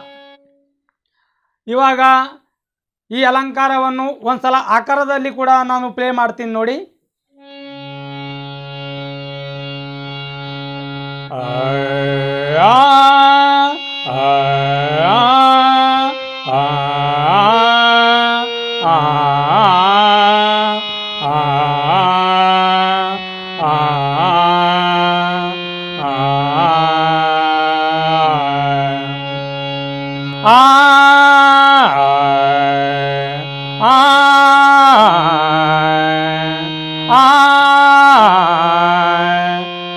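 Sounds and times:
harmonium held note: 0.0 - 0.7, 7.4 - 39.9
person singing syllables: 11.3 - 29.2.

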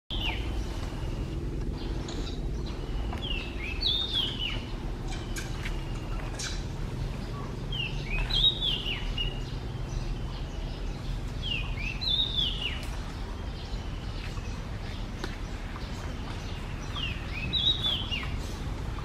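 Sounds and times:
low background rumble: 0.1 - 19.0
songbird whistling: 2.0 - 6.6, 16.9 - 18.4.

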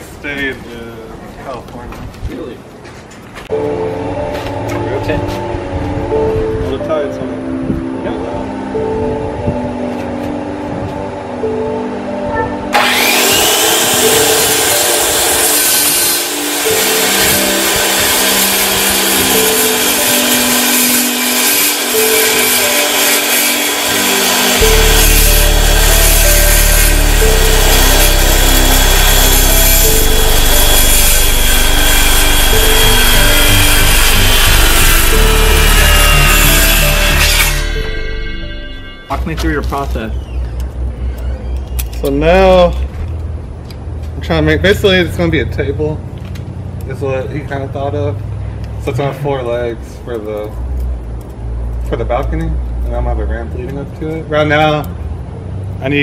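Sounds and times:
background music with melody: 3.4 - 42.4
deep bass: 3.5 - 12.8, 24.6 - 46.1
circular saw cutting wood: 12.7 - 39.6.

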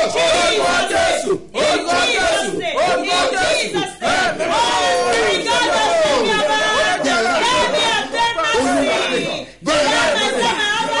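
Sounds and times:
voices praying aloud: 0.0 - 11.0.

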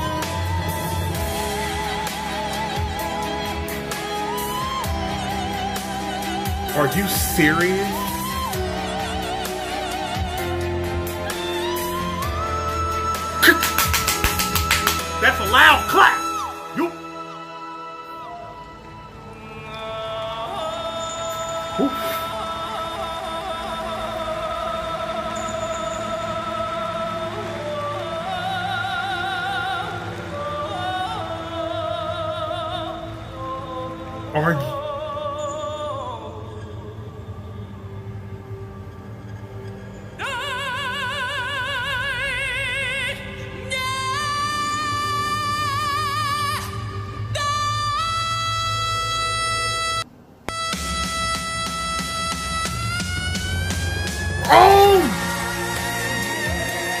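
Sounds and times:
backing music: 0.0 - 23.8, 50.6 - 57.0
man singing high note: 6.7 - 8.1, 15.3 - 17.0, 20.0 - 22.9, 54.4 - 55.3
man singing a long high note: 15.7 - 17.1, 19.4 - 37.2, 54.4 - 55.3.

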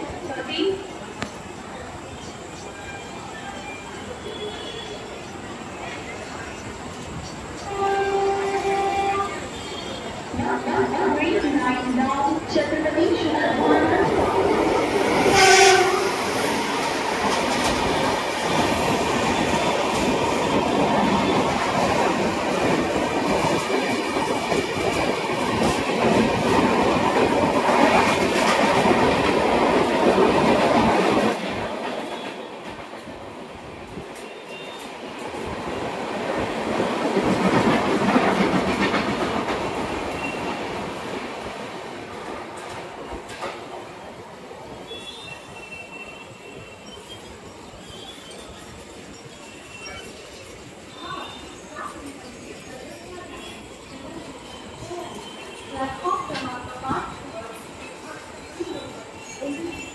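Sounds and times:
rail noise: 0.0 - 59.9
train rumble and wheel clatter: 0.0 - 59.9
train horn blast: 7.7 - 10.0, 15.2 - 16.2.

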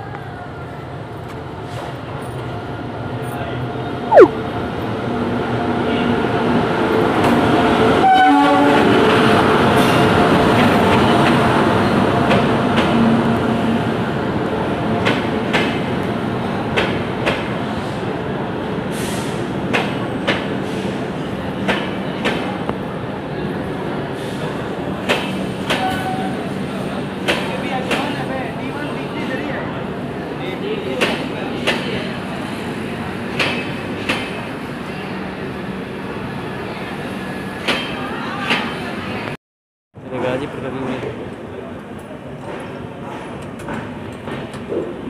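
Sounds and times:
passenger train rumbling: 0.0 - 39.4, 40.0 - 45.0.

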